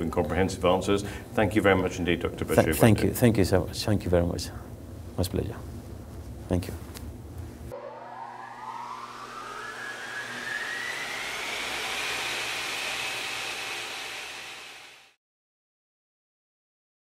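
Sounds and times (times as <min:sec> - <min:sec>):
rising whoosh with gliding tone: 0:07.7 - 0:15.1.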